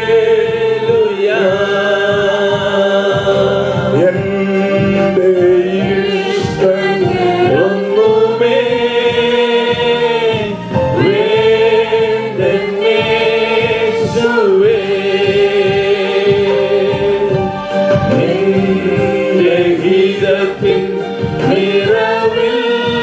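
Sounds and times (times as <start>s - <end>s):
women singing in unison: 5.7s - 17.3s, 18.1s - 23.0s.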